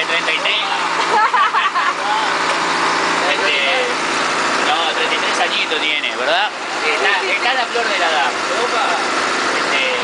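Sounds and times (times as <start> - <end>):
bus engine running: 0.0 - 10.0
road and cabin noise: 0.0 - 10.0.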